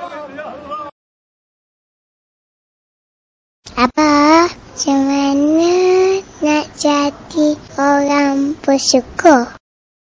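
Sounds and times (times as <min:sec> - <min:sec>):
child singing: 0:03.7 - 0:09.6.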